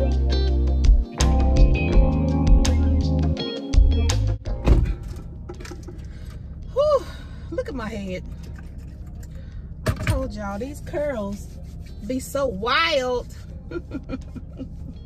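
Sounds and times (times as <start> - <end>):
guitar music: 0.0 - 5.7
single thump: 4.6 - 5.0
low steady hum: 4.6 - 15.0.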